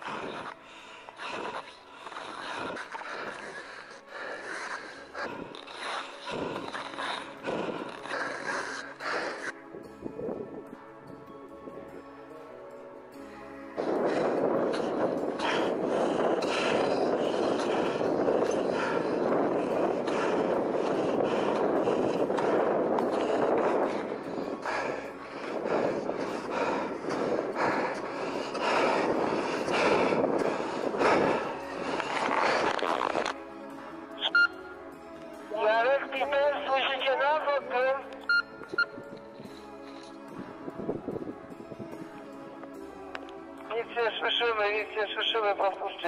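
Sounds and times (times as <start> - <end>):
person breathing hard: 0.0 - 10.0, 13.2 - 34.2, 39.1 - 42.9
wind buffeting microphone: 2.3 - 12.0, 13.5 - 33.4, 38.3 - 42.4.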